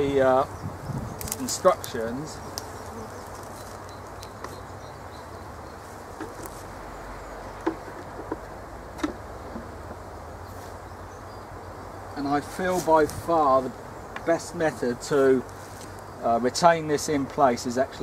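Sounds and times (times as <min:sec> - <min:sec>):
bees buzzing: 0:00.0 - 0:16.4
light clicks of hive handling: 0:01.2 - 0:04.6, 0:15.4 - 0:16.1.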